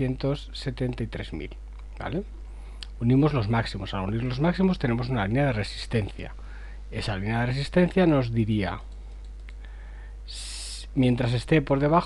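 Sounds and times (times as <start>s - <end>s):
man talking: 0.0s - 2.3s, 2.9s - 8.9s, 10.3s - 12.0s
steady low hum: 0.0s - 12.0s
faint click: 8.9s - 9.7s.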